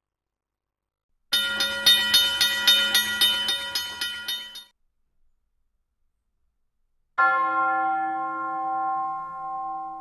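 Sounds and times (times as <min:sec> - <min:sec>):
steady ringing tones: 0:01.3 - 0:04.7
rapid metallic strikes: 0:01.4 - 0:04.7.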